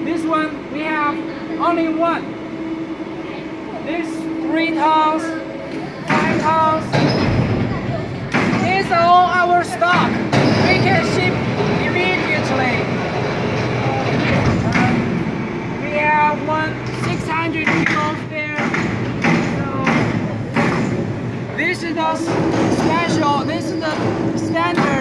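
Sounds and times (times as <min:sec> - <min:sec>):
people talking: 0:00.0 - 0:02.3, 0:03.2 - 0:12.9, 0:13.8 - 0:15.2, 0:15.8 - 0:20.2, 0:21.5 - 0:25.0
factory background noise: 0:00.0 - 0:25.0.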